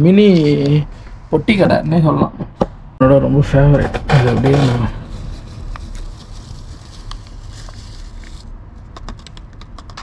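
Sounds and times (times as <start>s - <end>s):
steady low hum: 0.0s - 10.0s
plastic packet crinkling: 5.0s - 10.0s.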